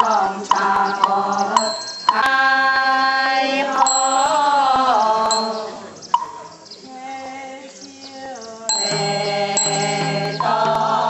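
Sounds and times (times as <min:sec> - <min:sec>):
group chanting in unison: 0:00.0 - 0:06.0, 0:06.8 - 0:11.0.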